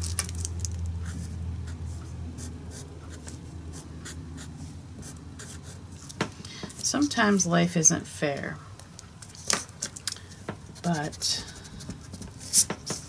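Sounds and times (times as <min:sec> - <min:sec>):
steady low hum: 0:00.0 - 0:13.0
marker scratching on paper: 0:01.0 - 0:05.8, 0:10.8 - 0:13.0.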